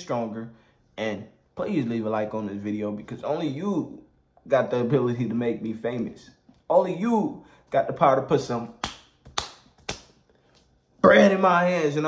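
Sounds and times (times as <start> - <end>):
sharp hand claps: 8.7 - 10.2.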